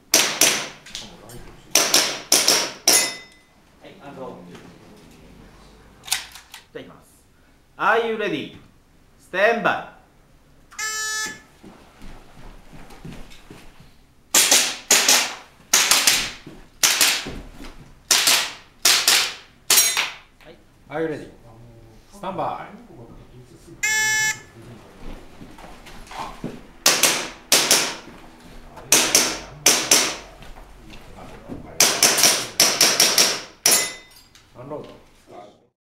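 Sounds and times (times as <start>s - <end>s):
airsoft pistol shots: 0.1s - 0.8s, 14.3s - 17.2s, 18.1s - 20.2s, 26.8s - 28.0s
shot timer beep: 10.8s - 11.5s, 23.8s - 24.5s.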